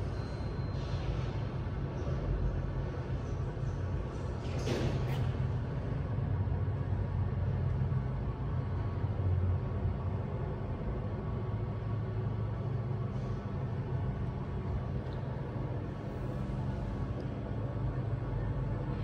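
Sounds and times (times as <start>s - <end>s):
elevator hum and rumble: 0.0s - 19.0s.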